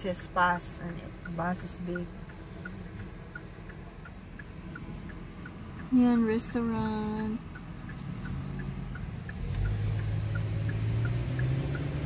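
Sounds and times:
car cabin hum: 0.0s - 12.0s
turn signal ticking: 0.0s - 12.0s.

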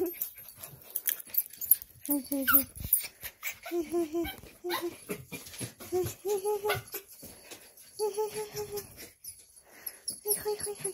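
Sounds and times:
dogs whimpering and whining: 0.0s - 10.9s.

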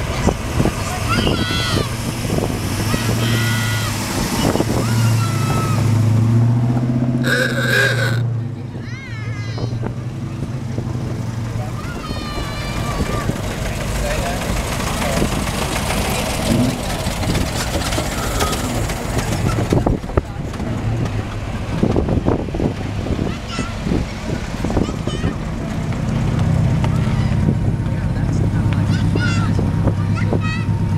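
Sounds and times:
car engines running: 0.0s - 30.9s
road noise: 0.0s - 30.9s
people chattering: 7.2s - 21.9s.

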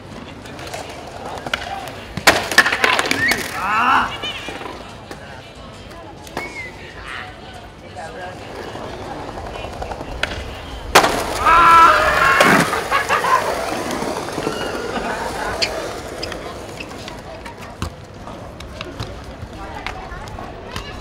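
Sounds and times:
skateboard wheels rolling on paving: 0.0s - 6.3s, 7.6s - 21.0s
skateboard landing smack: 1.4s - 3.6s, 10.2s - 11.5s
friends shouting and cheering: 11.0s - 15.9s.

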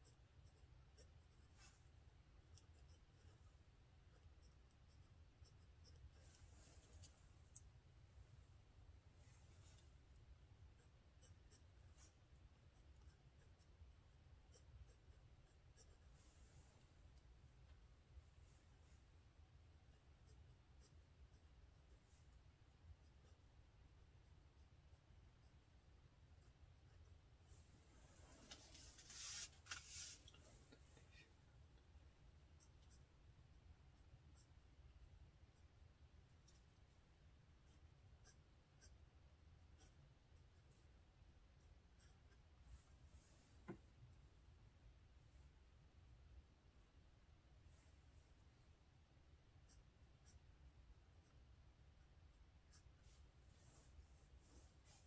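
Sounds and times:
pen scratching on paper: 0.0s - 6.6s, 9.6s - 16.3s, 19.6s - 27.4s, 36.4s - 43.1s
low room hum: 0.0s - 55.0s.

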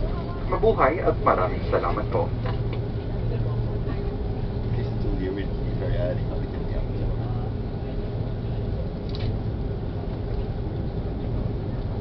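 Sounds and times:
faint voices: 0.0s - 12.0s
low cabin hum: 0.0s - 12.0s.

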